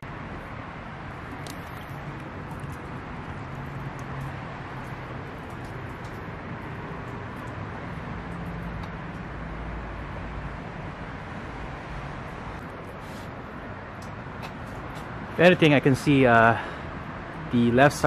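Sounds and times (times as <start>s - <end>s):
outdoor background noise: 0.0s - 18.0s.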